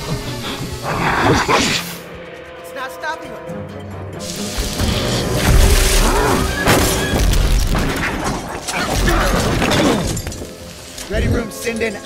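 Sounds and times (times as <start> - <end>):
dramatic film score: 0.0 - 12.0
shattering crash: 4.6 - 10.6.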